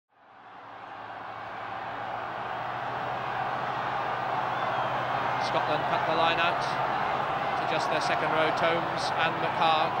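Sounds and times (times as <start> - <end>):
stadium crowd noise: 0.1 - 10.0.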